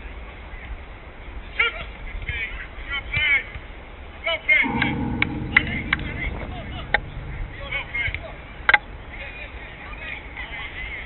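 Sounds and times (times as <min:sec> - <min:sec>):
low steady rumble: 0:04.6 - 0:11.0.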